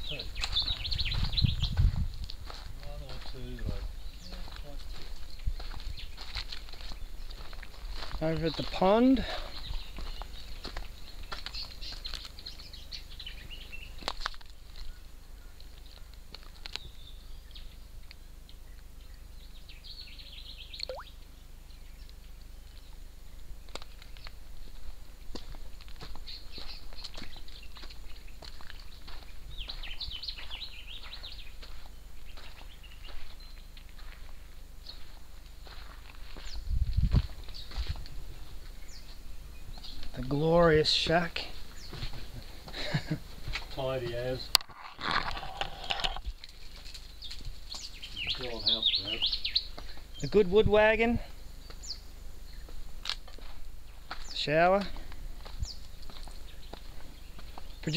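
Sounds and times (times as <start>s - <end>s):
birds chirping and calling: 0.0s - 57.9s.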